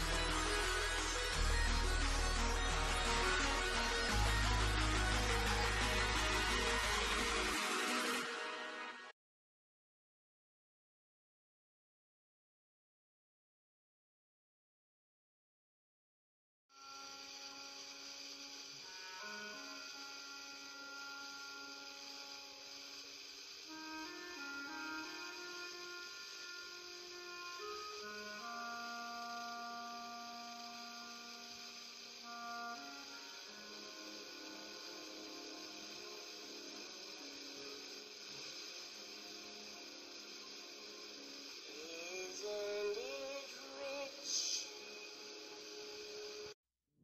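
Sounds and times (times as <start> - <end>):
steady hiss: 0.0 - 9.0, 16.8 - 46.6
radio music with slow chords: 0.0 - 9.1, 32.0 - 46.6.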